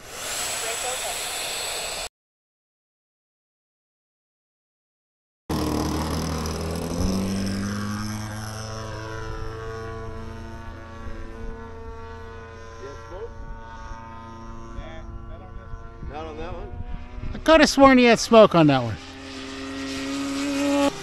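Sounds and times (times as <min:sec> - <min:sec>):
model jet whining: 0:00.0 - 0:02.1, 0:05.5 - 0:21.0.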